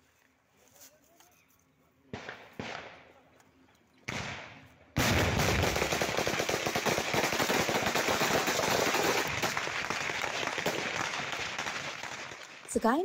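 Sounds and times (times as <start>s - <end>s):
automatic rifle gunfire: 2.1s - 3.0s, 4.1s - 9.6s.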